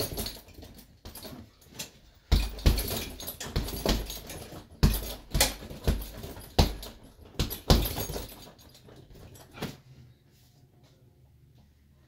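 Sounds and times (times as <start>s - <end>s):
punches thumping heavy bag: 0.0s - 1.4s, 2.3s - 9.3s
chain jingling: 0.0s - 9.6s.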